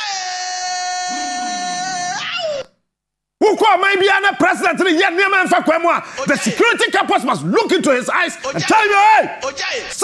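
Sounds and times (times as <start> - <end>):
long high-pitched held cry: 0.0 - 2.7.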